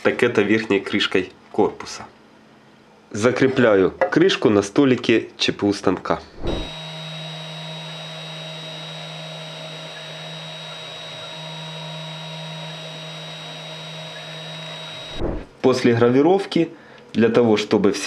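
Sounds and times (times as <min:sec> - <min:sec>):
engraving machine motor hum and whine: 0:06.4 - 0:15.5.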